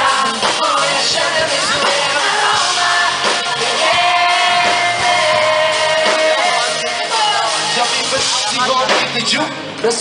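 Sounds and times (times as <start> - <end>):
live pop band: 0.0 - 10.0.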